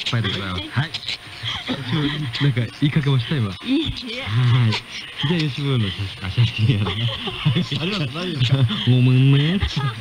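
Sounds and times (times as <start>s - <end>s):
radio hosts talking: 0.0s - 10.0s.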